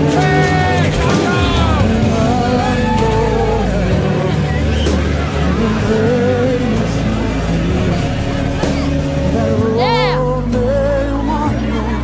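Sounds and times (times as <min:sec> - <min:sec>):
bass notes: 0:00.0 - 0:12.0
pop music with singing: 0:00.0 - 0:12.0.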